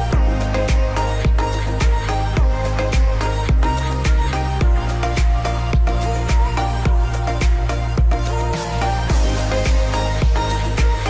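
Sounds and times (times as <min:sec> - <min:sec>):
electro house music: 0:00.0 - 0:11.0.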